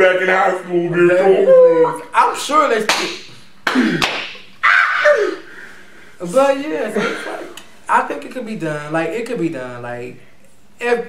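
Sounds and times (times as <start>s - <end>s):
sharp slap: 2.9s - 4.5s.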